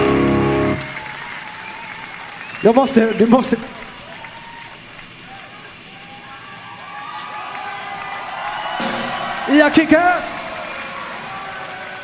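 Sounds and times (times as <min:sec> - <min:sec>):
concert crowd cheering and shouting: 0:00.0 - 0:12.0.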